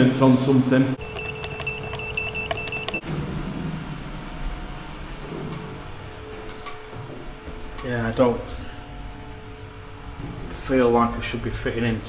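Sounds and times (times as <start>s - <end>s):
machine whine with ticking: 1.0s - 3.2s.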